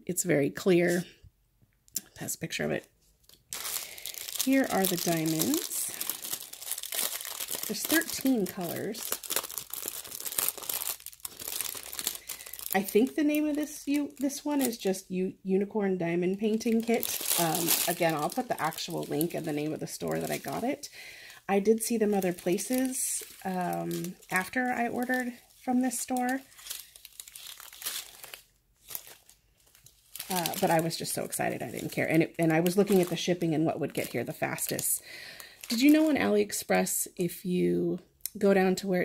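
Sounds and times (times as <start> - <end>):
plastic bags crinkling: 2.7 - 15.1, 16.0 - 36.5.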